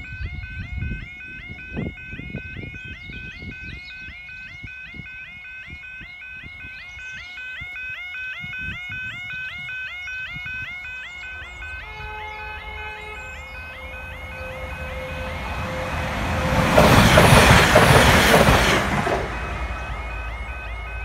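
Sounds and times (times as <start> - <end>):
level crossing warbling alarm: 0.0 - 21.0.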